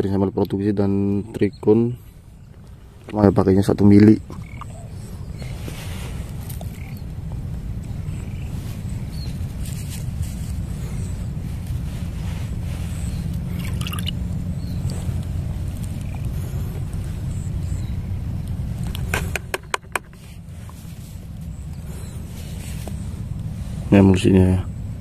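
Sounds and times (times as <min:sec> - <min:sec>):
steady low rumble: 0:00.0 - 0:25.0.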